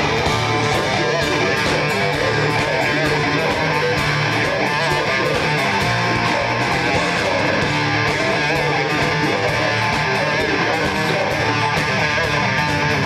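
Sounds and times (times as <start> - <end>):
bass guitar: 0.0 - 13.0
distorted electric guitar: 0.0 - 13.0
drumming with cymbals: 0.0 - 13.0
vocals into a microphone: 0.0 - 13.0.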